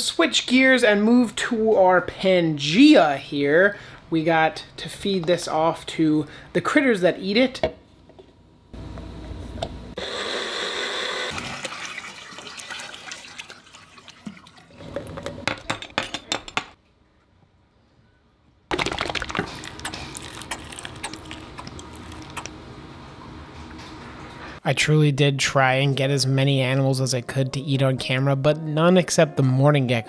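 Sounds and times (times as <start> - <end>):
water pouring: 11.3 - 15.5, 18.7 - 22.5
food being mixed in cup: 18.7 - 22.5
squeeze bottle squirting: 18.7 - 22.5.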